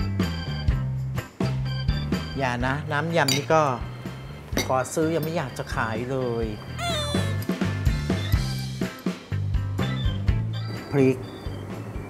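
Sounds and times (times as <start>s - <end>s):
background music with steady beat: 0.0s - 12.0s
cat-like meow sound effect: 6.8s - 7.4s.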